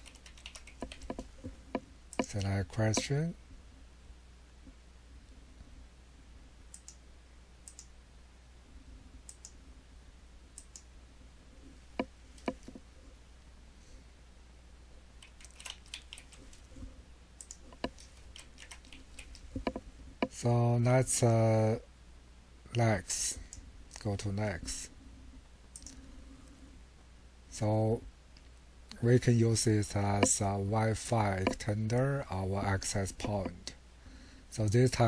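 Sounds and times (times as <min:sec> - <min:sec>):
keyboard keystrokes: 0:00.0 - 0:01.2, 0:15.2 - 0:16.4
computer keyboard keystrokes: 0:00.0 - 0:01.3, 0:15.2 - 0:16.6, 0:17.4 - 0:19.8
mouse clicks: 0:06.7 - 0:07.0, 0:07.6 - 0:07.9, 0:09.3 - 0:09.6, 0:17.4 - 0:19.8.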